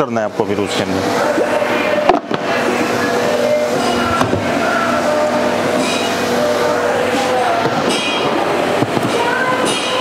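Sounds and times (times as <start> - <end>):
machinery hum with held tones: 0.0 - 10.0.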